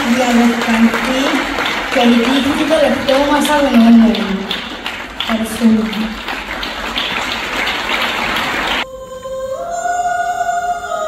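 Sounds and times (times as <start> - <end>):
audience applauding: 0.0 - 8.8
choir singing held notes: 6.5 - 11.0.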